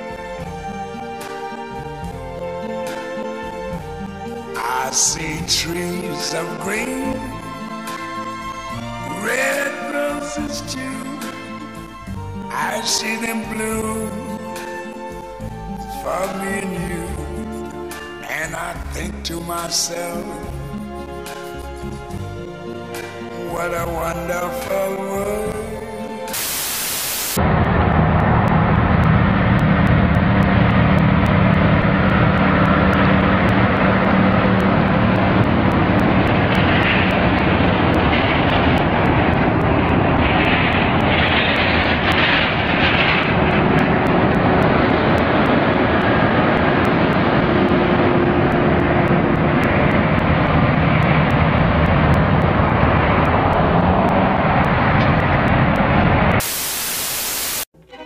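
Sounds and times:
truck engine drone: 0.0s - 57.7s
loud rushing noise: 26.1s - 57.7s
burst of static: 26.2s - 57.7s.

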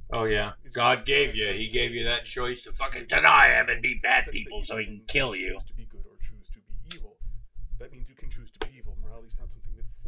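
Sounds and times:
man speaking: 0.1s - 7.2s, 7.8s - 10.0s.

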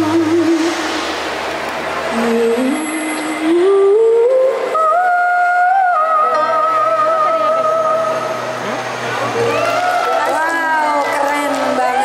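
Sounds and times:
girl singing through microphone: 0.0s - 1.1s, 2.1s - 8.4s, 10.4s - 12.0s.

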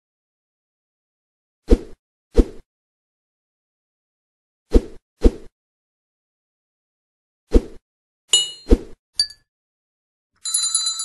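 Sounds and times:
notification bell tinkling: 8.4s - 9.4s, 10.4s - 11.0s.

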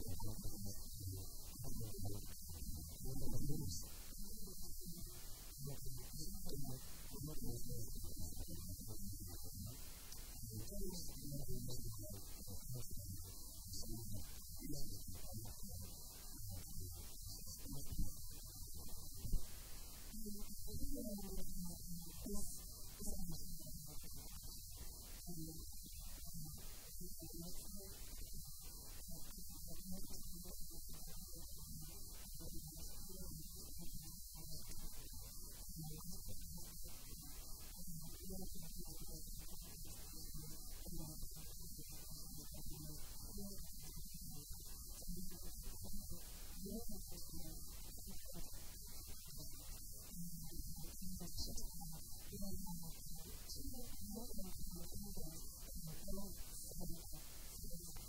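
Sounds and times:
low electrical hum: 0.0s - 58.0s.

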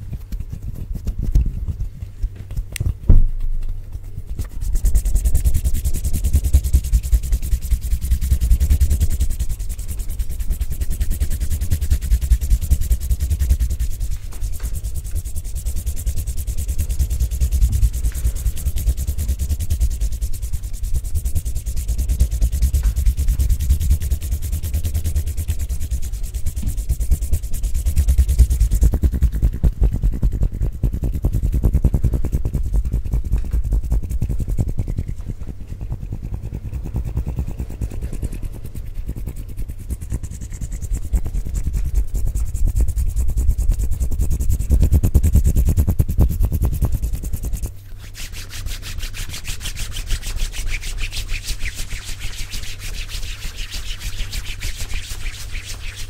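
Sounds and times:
hands rubbing close to microphone: 0.0s - 56.0s.

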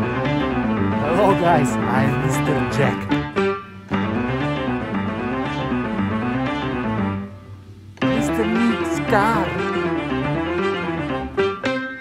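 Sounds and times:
plucked string background music: 0.0s - 12.0s.

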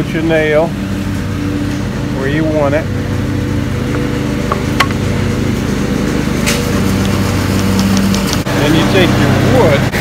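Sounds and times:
low machine drone: 0.0s - 10.0s.

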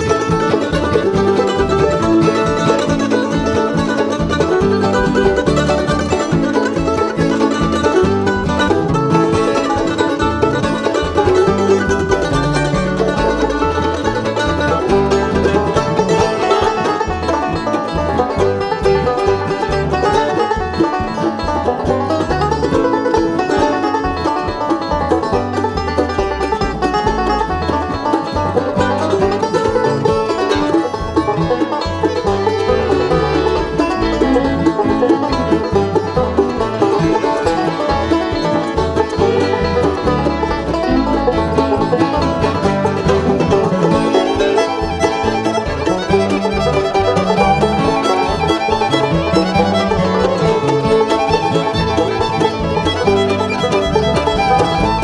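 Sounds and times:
banjo: 0.0s - 55.0s
bluegrass band instrumental: 0.0s - 55.0s.

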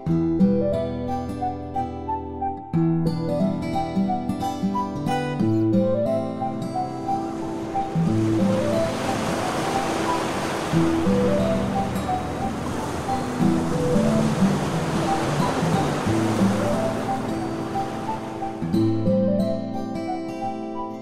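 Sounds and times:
instrumental background music: 0.0s - 21.0s
steady rushing noise: 7.4s - 18.7s.

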